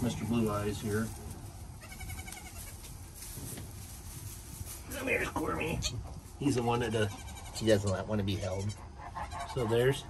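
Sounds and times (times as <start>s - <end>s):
goat kid bleating: 1.8s - 2.9s, 4.9s - 6.1s, 6.7s - 10.0s.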